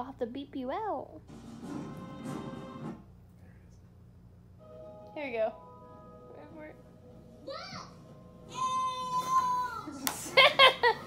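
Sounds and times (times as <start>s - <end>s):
orchestral music from television: 1.3s - 3.0s, 4.6s - 11.0s.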